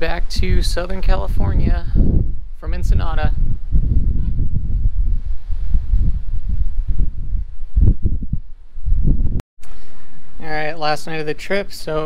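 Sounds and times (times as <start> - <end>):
wind buffeting microphone: 0.0 - 12.0
rush of air: 3.4 - 10.4.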